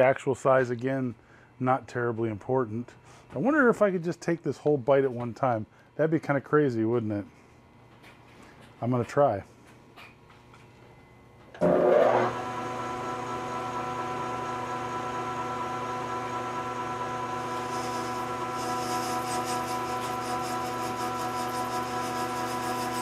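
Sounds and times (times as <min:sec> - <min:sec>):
lathe motor and gear whine: 0:11.5 - 0:23.0.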